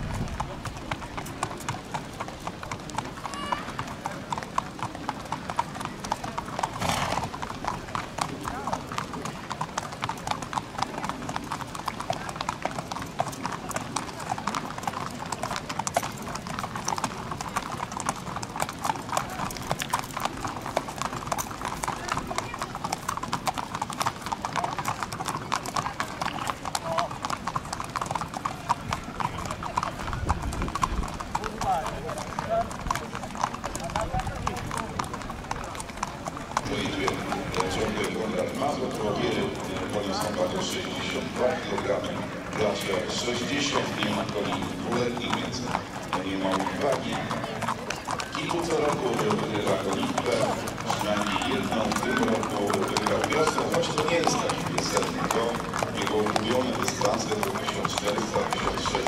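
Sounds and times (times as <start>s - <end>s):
hooves clip-clopping on pavement: 0.0s - 59.0s.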